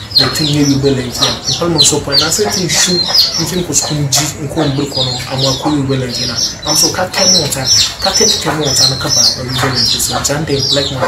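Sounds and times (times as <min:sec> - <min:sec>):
birds chirping: 0:00.0 - 0:11.0
people talking: 0:00.0 - 0:11.0.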